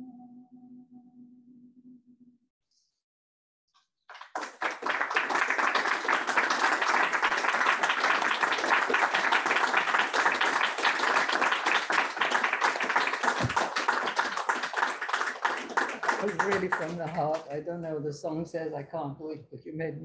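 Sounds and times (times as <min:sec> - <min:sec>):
audience applause: 0:04.1 - 0:17.6.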